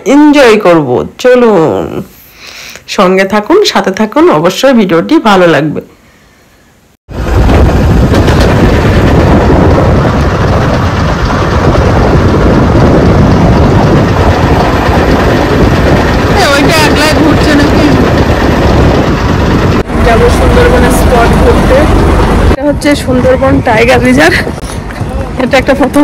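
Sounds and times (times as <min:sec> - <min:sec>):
boat engine rumble: 0:07.1 - 0:26.0
wind on microphone: 0:07.1 - 0:26.0.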